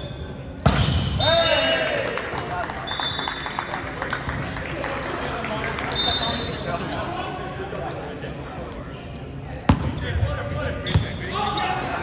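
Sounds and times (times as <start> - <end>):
people talking in a gym: 0.0 - 12.0.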